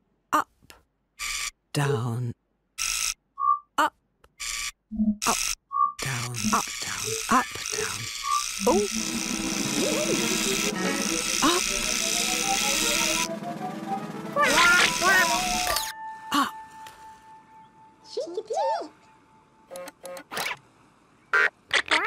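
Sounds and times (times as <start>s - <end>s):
motor-like buzz: 2.8s - 3.2s, 4.4s - 13.4s, 14.4s - 15.9s
rising run of notes: 11.8s - 17.3s
squeaky babbling character voices: 14.4s - 15.8s.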